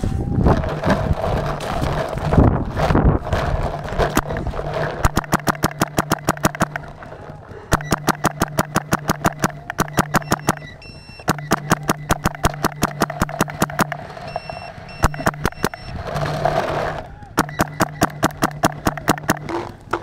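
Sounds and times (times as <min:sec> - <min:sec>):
paintball marker firing rapidly: 0:00.5 - 0:15.9, 0:17.3 - 0:20.0.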